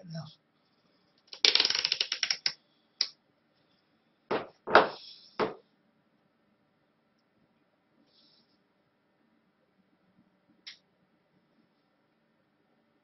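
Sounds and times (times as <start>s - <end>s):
small objects clicking and rattling: 1.3s - 2.6s
knocks on workbench: 4.3s - 5.6s.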